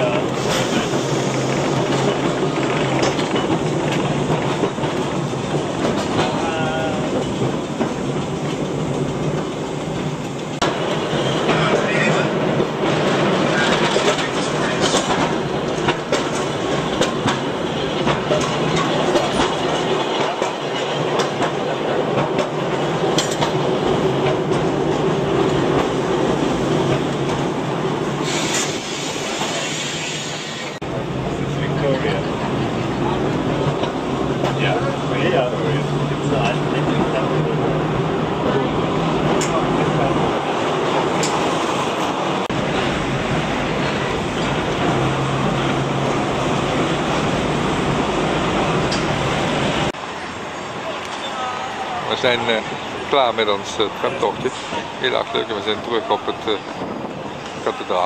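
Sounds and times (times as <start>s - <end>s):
tram wheels rumbling on rails: 0.0s - 58.0s.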